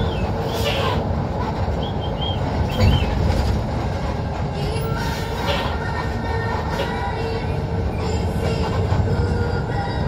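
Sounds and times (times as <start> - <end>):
bus engine and road rumble: 0.0 - 10.0.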